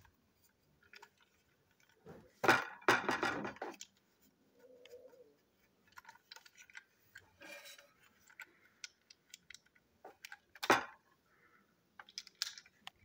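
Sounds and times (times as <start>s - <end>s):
plastic toy parts scraping rattle: 0.0s - 4.0s, 5.7s - 11.0s, 12.0s - 13.0s
small plastic clicks: 8.2s - 11.0s, 11.9s - 13.0s.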